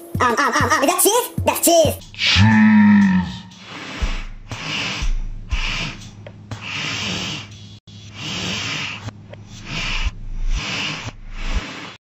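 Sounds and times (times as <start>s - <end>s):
person breathing heavily: 2.2s - 12.0s.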